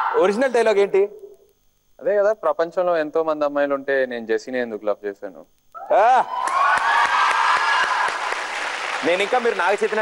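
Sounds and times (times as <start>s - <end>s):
women screaming and cheering: 6.2s - 8.3s
audience clapping: 6.4s - 10.0s.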